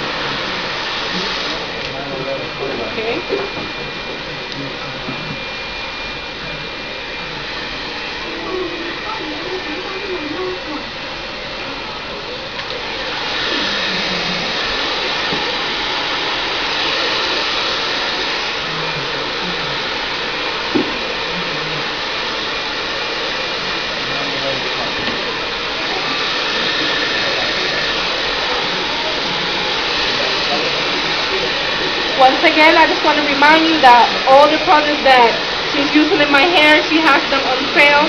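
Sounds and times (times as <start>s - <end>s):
faint voices: 0.0s - 38.0s
hair dryer blowing: 0.0s - 38.0s.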